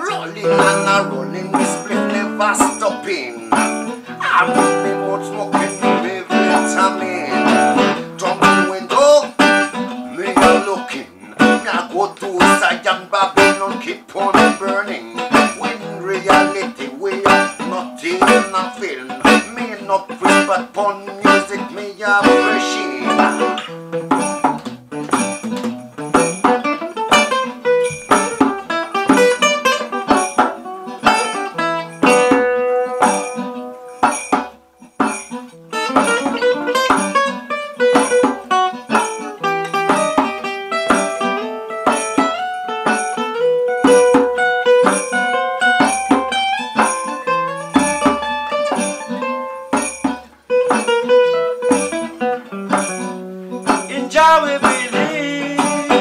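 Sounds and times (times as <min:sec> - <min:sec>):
hand drum: 0:00.0 - 0:12.7, 0:13.4 - 0:56.0
acoustic guitar reggae groove: 0:00.0 - 0:56.0.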